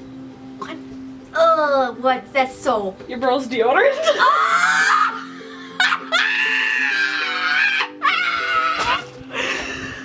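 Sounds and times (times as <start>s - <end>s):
background music sustained notes: 0.0s - 10.0s.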